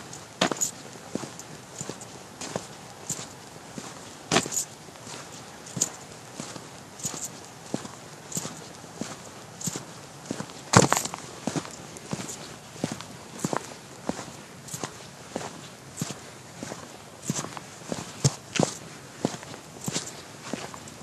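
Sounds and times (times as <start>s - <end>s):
footsteps on gritty concrete: 0.0s - 20.9s.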